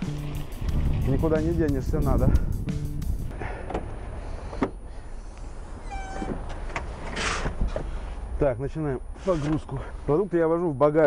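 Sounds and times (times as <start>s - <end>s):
short squeak: 4.2s - 6.5s.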